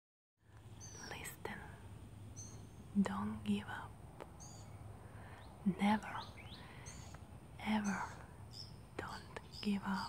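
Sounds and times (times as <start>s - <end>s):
low steady hum: 0.4s - 10.0s
woman whispering: 1.0s - 1.8s, 2.9s - 4.0s, 5.6s - 6.5s, 7.6s - 8.3s, 9.0s - 10.0s.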